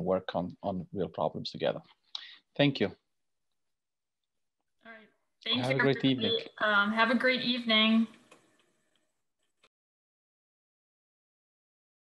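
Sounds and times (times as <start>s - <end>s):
woman speaking: 4.9s - 8.2s.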